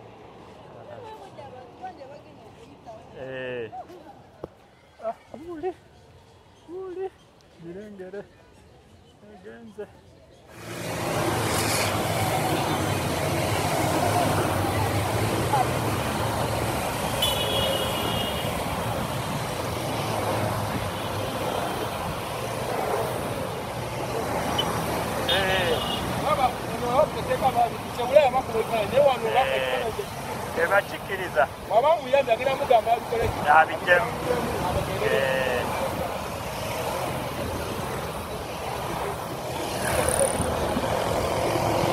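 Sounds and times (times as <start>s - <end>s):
motorcycle engines rumbling: 10.5s - 41.9s
people's voices: 11.6s - 41.9s.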